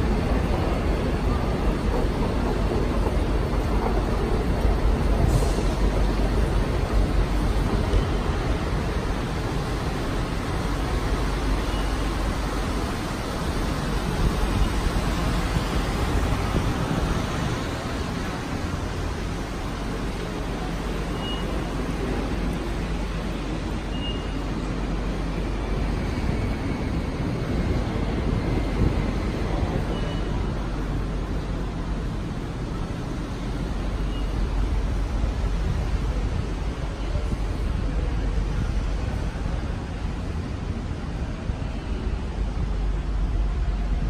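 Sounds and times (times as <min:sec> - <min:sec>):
concourse rumble and hiss: 0:00.0 - 0:44.0
faint short beeps: 0:21.1 - 0:21.7, 0:23.8 - 0:24.5, 0:29.8 - 0:30.5, 0:34.1 - 0:34.4.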